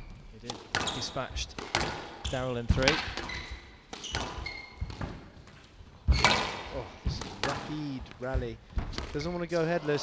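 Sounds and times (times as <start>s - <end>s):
shoes squeaking on court floor: 0.0s - 8.4s.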